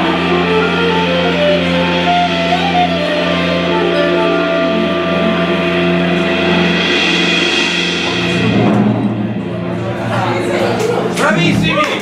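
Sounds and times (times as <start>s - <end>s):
jazz quartet playing: 0.0s - 12.0s
cymbal swell: 1.9s - 10.4s.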